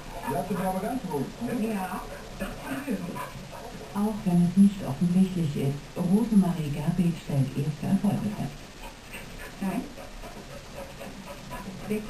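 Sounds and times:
dog vocalising: 0.0s - 1.1s, 1.8s - 4.0s, 8.2s - 12.0s
faint voices: 0.0s - 12.0s.

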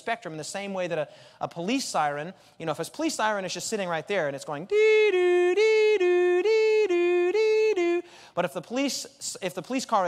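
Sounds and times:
man imitating police siren: 4.7s - 8.0s.

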